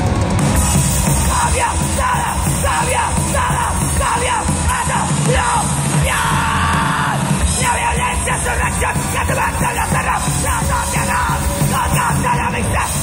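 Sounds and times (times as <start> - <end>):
punk band playing: 0.0 - 13.0.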